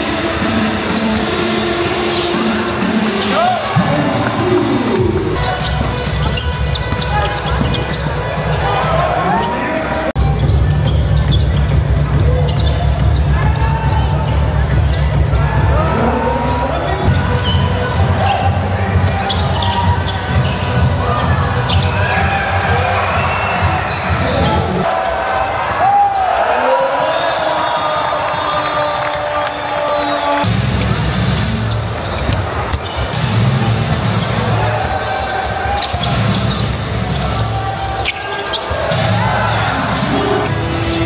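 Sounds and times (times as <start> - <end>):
crowd noise and voices: 0.0 - 41.0
ball bouncing on court: 5.3 - 8.2.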